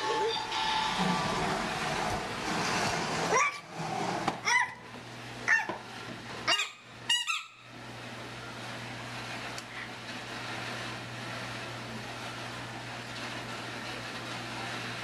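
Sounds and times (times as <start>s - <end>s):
plastic wheels rolling on tile floor: 0.7s - 4.5s, 8.6s - 15.0s.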